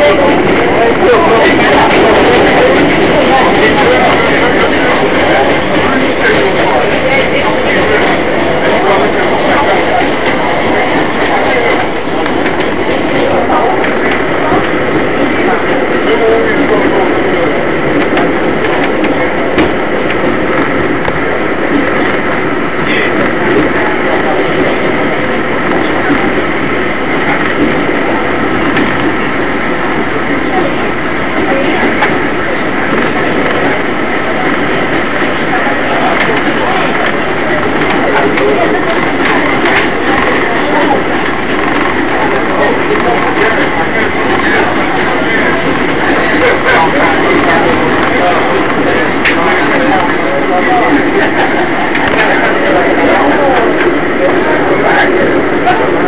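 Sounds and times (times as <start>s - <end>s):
subway wheels rumbling on track: 0.0s - 56.0s.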